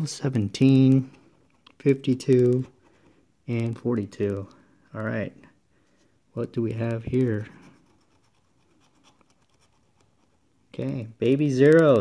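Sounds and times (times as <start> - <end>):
scratching lottery ticket: 0.6 - 4.5, 6.6 - 10.4.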